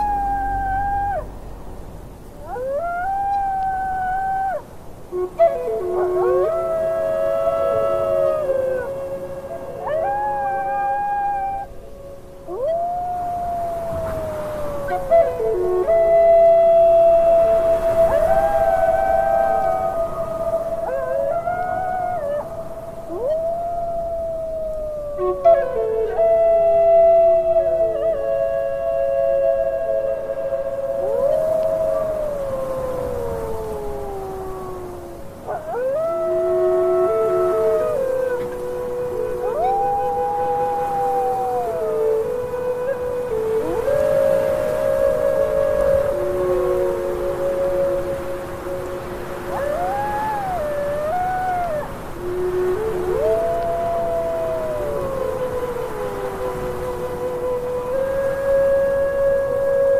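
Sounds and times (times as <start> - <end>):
wolves howling: 0.0 - 59.9.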